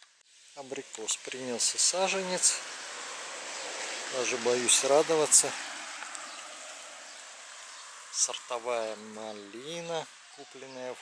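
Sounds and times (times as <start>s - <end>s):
outdoor background hiss: 0.0s - 11.0s.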